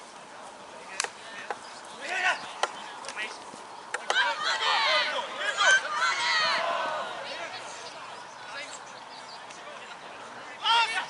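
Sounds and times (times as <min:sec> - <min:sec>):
people shouting: 0:03.9 - 0:07.9.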